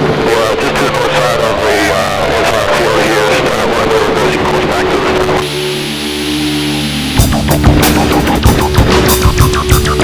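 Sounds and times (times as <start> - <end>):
voices: 0.0 - 5.6.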